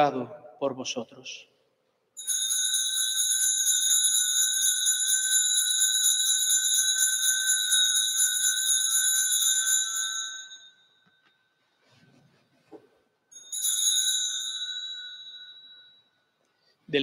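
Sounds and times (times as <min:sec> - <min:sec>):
altar bells ringing: 0:02.2 - 0:11.3, 0:13.3 - 0:16.2.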